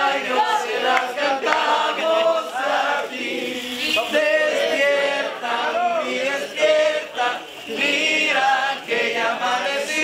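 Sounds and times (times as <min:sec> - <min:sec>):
group of people singing: 0:00.0 - 0:10.0.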